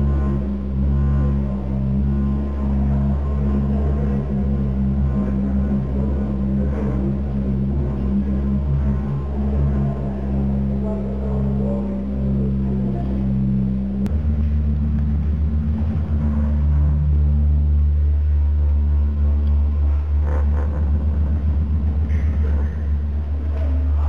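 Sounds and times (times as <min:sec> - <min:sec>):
deep electronic bass drone: 0:00.0 - 0:24.0.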